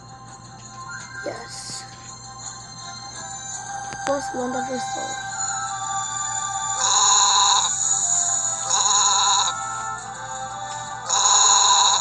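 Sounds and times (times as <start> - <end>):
background music: 0.0 - 12.0
wavering bleat-like sound effect: 6.8 - 7.8, 8.6 - 9.6, 11.1 - 12.0.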